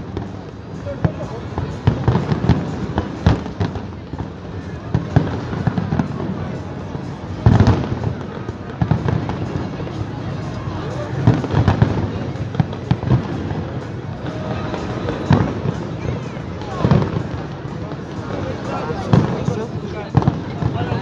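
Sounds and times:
fireworks bangs: 0.0 - 21.0.

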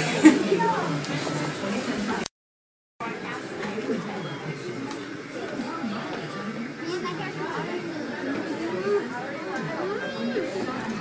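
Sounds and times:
indistinct chatter of voices: 0.0 - 2.3, 3.0 - 11.0.

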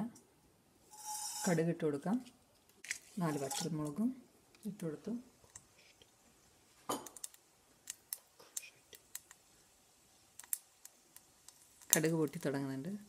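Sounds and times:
chillies sputtering in hot oil: 0.8 - 1.7, 7.1 - 13.0
person speaking: 1.4 - 2.3, 3.2 - 5.3.

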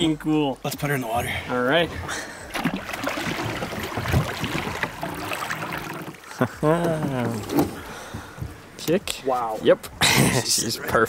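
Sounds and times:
water splashing against boat: 1.6 - 8.8.

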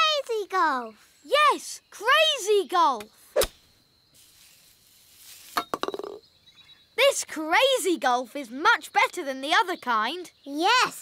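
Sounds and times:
cartoon golf club knock: 5.6 - 6.2.

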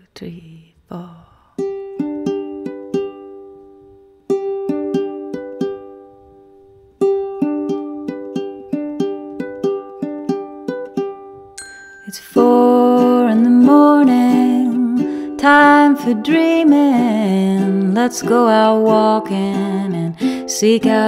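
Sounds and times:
toy glockenspiel notes: 11.6 - 12.4.

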